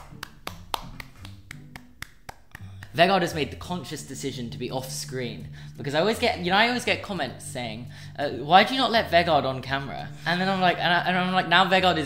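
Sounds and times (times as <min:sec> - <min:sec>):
person clapping hands: 0:00.0 - 0:03.3.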